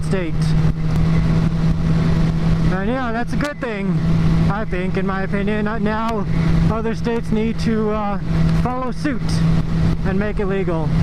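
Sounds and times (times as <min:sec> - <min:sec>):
motorcycle engine cruising: 0:00.0 - 0:11.0
wind noise on microphone: 0:00.0 - 0:11.0.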